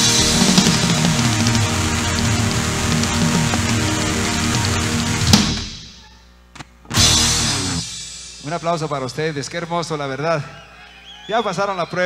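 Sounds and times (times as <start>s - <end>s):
sharp drum strikes: 0.0s - 6.0s, 6.9s - 9.0s
band final hit with cymbal: 6.9s - 9.0s.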